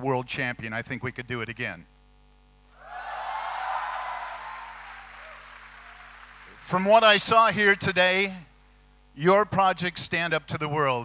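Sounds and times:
audience applause: 2.8 - 6.7
audience cheering: 2.8 - 7.0.

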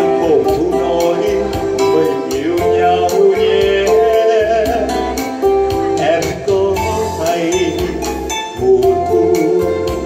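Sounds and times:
electronic keyboard with beat: 0.0 - 10.0
man singing into microphone: 0.0 - 10.0.

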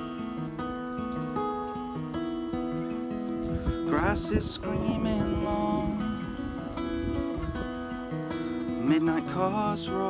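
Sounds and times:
acoustic guitar strumming: 0.0 - 10.0
wind rumble on microphone: 3.4 - 8.1.

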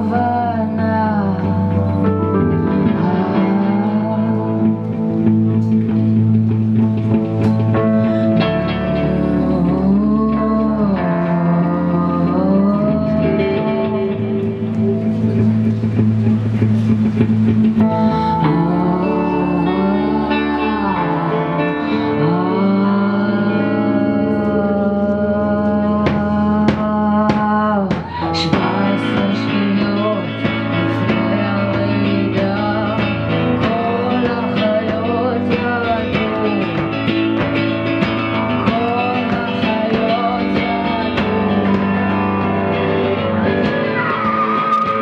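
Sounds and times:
woman singing: 0.0 - 5.2, 8.3 - 14.8, 17.8 - 45.0
guitar accompaniment: 0.0 - 45.0.

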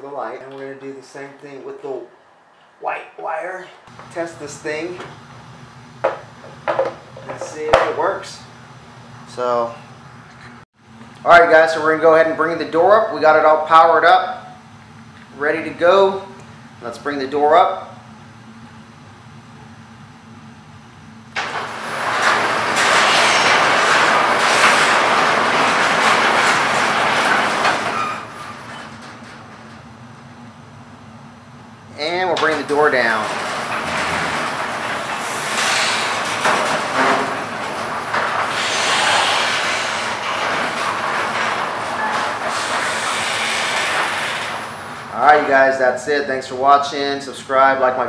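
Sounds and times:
garage door opener running: 21.2 - 46.7.

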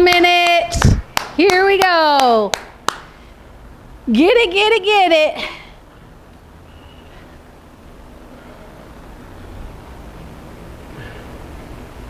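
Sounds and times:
sharp hand claps: 0.0 - 3.2.

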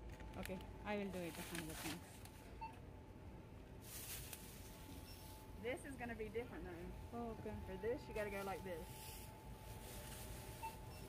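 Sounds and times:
faint steady hum: 0.0 - 11.0
rustle of handling: 0.2 - 2.4, 3.8 - 5.6, 8.1 - 11.0
faint electronic beep: 7.2 - 11.0.

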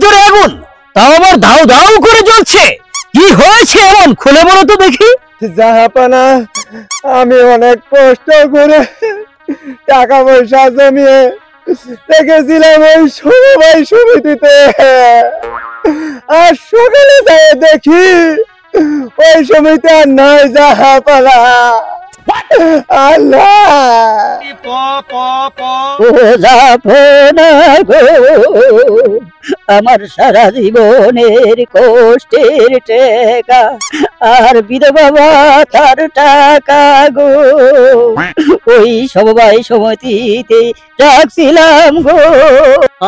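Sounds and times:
music: 0.0 - 43.0
catches of breath: 6.6 - 7.0, 9.4 - 9.9, 15.8 - 16.3, 18.7 - 19.2
person wailing in grief: 8.8 - 10.0, 18.3 - 19.2, 21.9 - 24.4, 26.0 - 30.4, 38.4 - 38.8.

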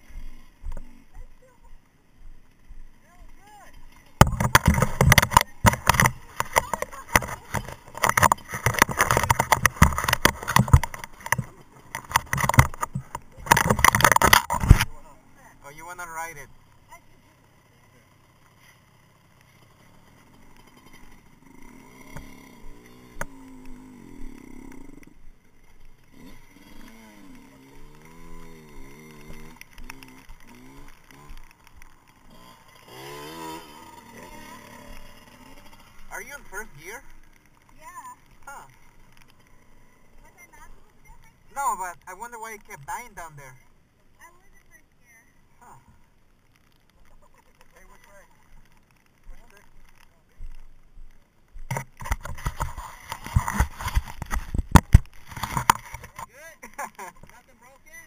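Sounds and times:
rubbing and knocking on microphone: 4.2 - 15.0, 51.6 - 56.3.

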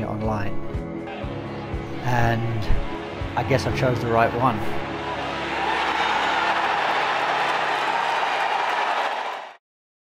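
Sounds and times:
crowd cheering and applauding: 2.8 - 9.6.

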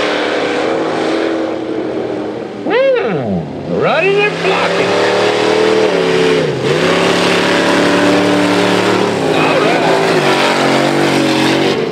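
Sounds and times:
truck engines revving high: 0.0 - 11.9.

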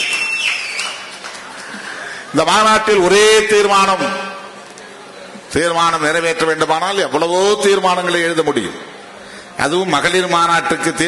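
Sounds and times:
man speaking over public address: 2.3 - 4.6, 5.5 - 9.0, 9.6 - 11.0.

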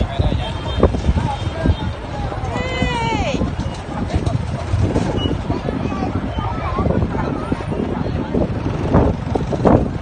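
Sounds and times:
low rumble of street noise: 0.0 - 10.0.

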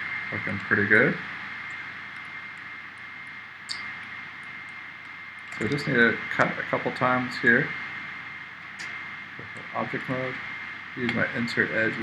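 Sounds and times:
high-pitched whine: 0.0 - 12.0.

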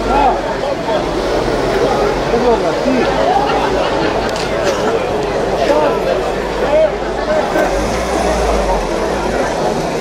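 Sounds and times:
people chattering: 0.0 - 10.0
car driving by: 0.1 - 10.0.

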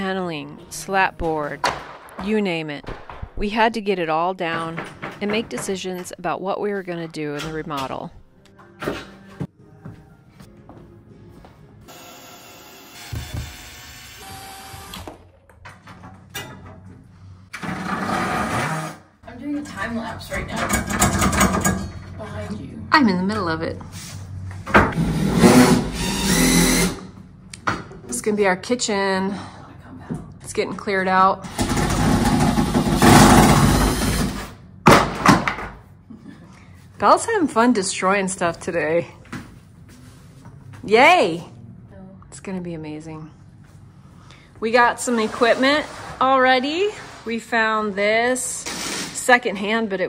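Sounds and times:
cordless drill running: 11.9 - 15.1, 26.0 - 27.0.

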